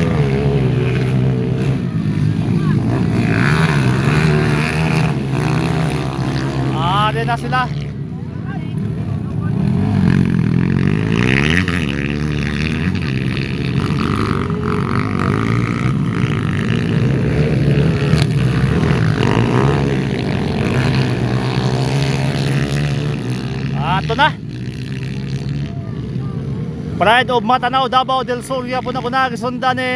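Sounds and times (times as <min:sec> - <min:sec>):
dirt bike engines revving: 0:00.0 - 0:29.9.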